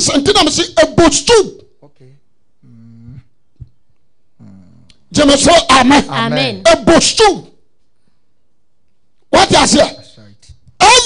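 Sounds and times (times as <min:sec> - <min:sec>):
person speaking: 0:04.4 - 0:07.6.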